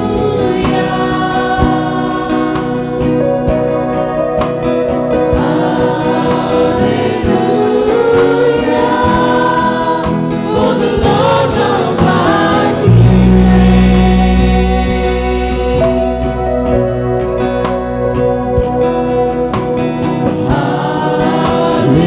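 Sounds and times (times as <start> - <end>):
woman singing lead vocal: 0.0 - 3.2, 5.4 - 16.4, 20.4 - 22.0
backing singers: 0.0 - 3.4, 5.3 - 16.4, 20.3 - 22.0
acoustic guitar: 0.0 - 22.0.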